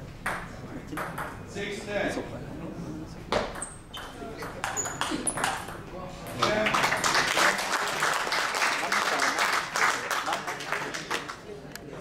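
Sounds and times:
ball bouncing on table: 0.2 - 1.4, 3.3 - 5.8.

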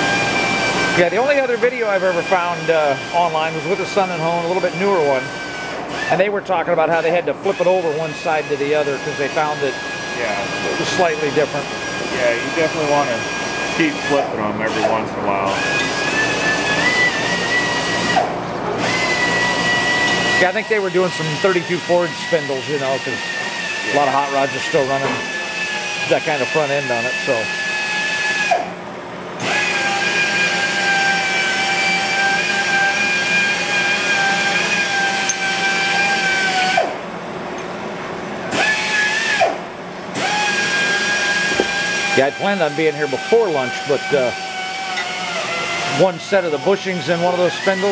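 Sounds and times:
honing machine hum: 0.0 - 27.8.

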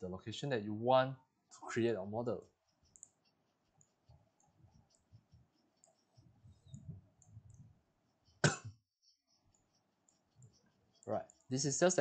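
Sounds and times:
computer mouse clicks: 2.7 - 7.8, 9.4 - 11.9.

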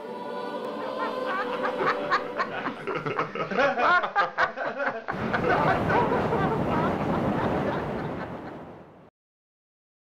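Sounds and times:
person chuckling: 0.8 - 7.2.

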